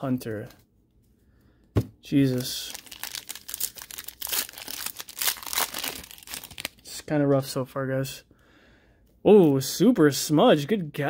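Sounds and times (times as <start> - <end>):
foil wrapper crinkling and tearing: 2.2 - 6.8.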